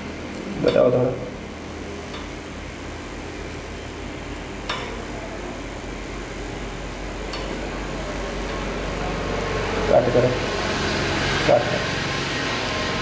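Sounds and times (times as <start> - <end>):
low electrical hum: 0.0 - 13.0
welding arc hissing: 0.0 - 13.0.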